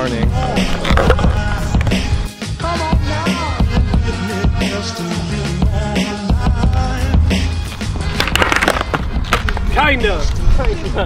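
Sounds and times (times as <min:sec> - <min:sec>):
background music with bass line: 0:00.0 - 0:11.0
skateboard tail popping: 0:00.4 - 0:02.3, 0:07.7 - 0:09.8
skateboard clattering on concrete: 0:00.6 - 0:02.0, 0:08.1 - 0:09.8.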